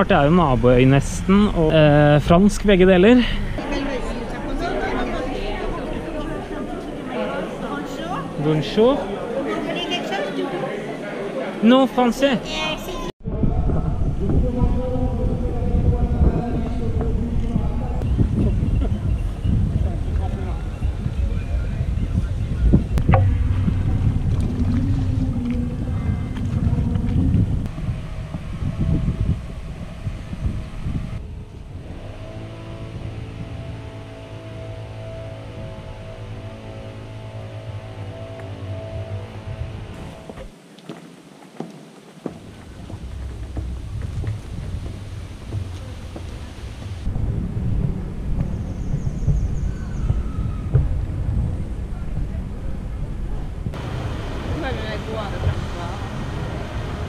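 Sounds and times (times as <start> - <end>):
outdoor ambience: 0.0 - 57.0
wind rumbling on microphone: 13.2 - 40.6, 41.8 - 57.0
steady low hum: 13.3 - 40.6.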